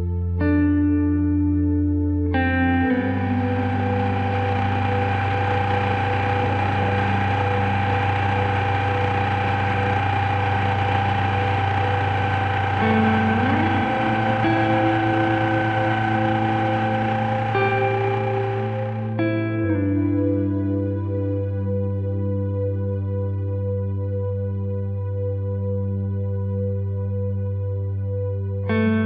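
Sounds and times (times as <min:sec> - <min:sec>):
soft ambient music: 0:00.0 - 0:29.0
outboard motor running: 0:02.9 - 0:19.2.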